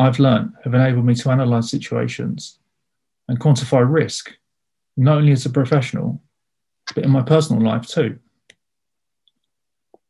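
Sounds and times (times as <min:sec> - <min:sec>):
man's voice: 0:00.0 - 0:02.6, 0:06.9 - 0:08.2.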